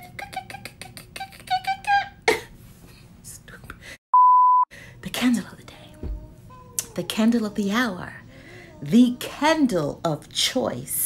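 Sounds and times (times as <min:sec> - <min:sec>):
high-pitched censor bleep: 0:04.1 - 0:04.7.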